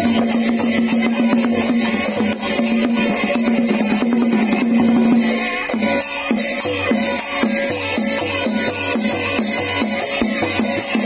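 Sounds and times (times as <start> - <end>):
drum strokes: 0.0 - 11.0.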